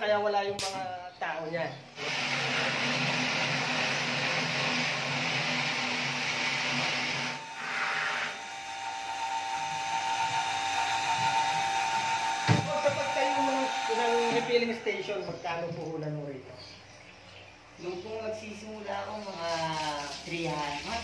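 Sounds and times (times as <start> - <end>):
pump motor hum: 2.0 - 15.1
steady high whine: 6.2 - 15.9
container thump: 12.5 - 13.0.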